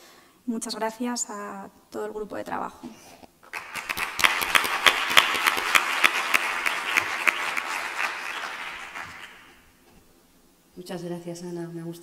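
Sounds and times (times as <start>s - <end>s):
audience applauding: 3.5s - 9.6s.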